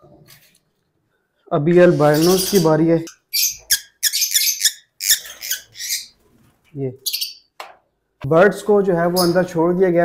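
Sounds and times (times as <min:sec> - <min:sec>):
bird chick squawking: 0:01.9 - 0:06.2.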